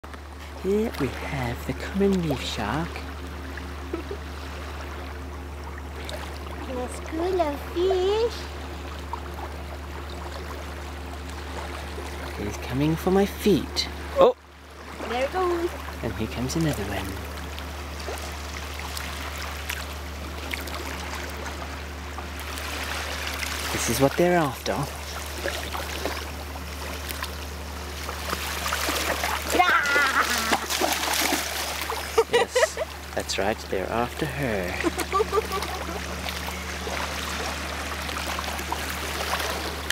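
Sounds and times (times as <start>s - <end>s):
low hum: 0.0s - 39.9s
water lapping at shore: 0.0s - 39.9s.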